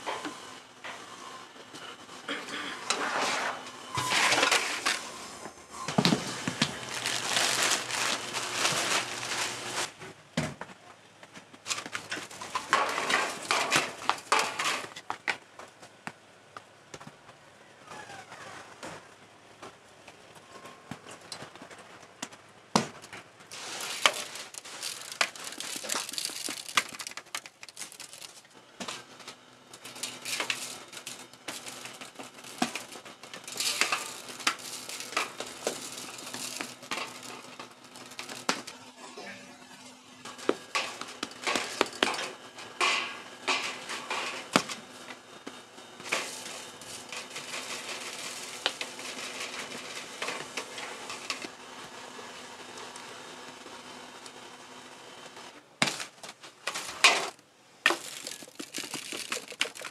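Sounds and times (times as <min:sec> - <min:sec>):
aluminium foil tins crinkling: 0:04.0 - 0:05.1, 0:06.1 - 0:09.9, 0:11.7 - 0:15.0, 0:23.5 - 0:38.8, 0:40.3 - 0:44.6, 0:46.0 - 0:51.5, 0:55.9 - 0:59.9.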